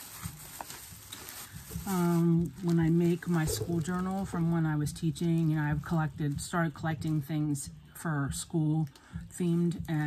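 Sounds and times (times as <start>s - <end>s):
packets rustling: 0.0s - 7.2s.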